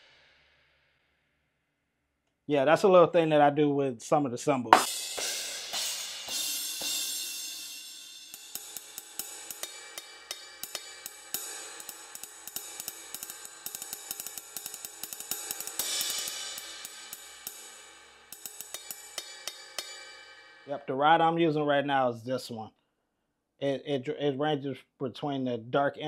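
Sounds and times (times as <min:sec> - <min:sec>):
cymbal crash ringing: 0:04.8 - 0:20.7
ride cymbal pattern: 0:04.8 - 0:20.8.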